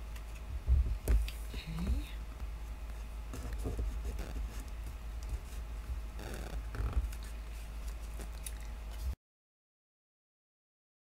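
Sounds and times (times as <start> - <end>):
steady low hum: 0.0 - 9.2.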